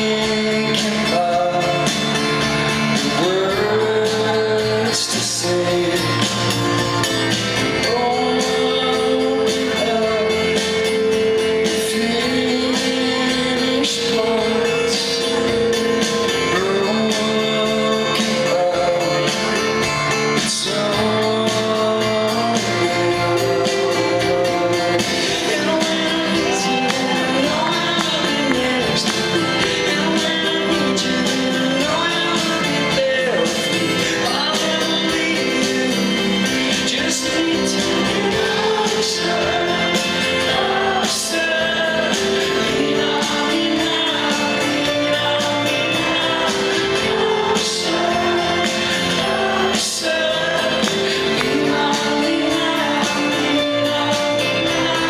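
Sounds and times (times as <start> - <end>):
live band playing: 0.0 - 55.0.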